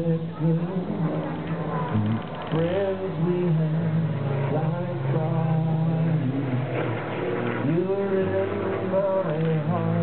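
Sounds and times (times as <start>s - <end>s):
acoustic guitars: 0.0s - 10.0s
electric bass: 0.0s - 10.0s.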